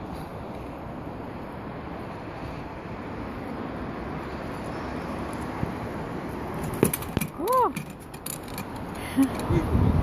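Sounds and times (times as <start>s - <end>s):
wind noise on microphone: 8.6s - 10.0s.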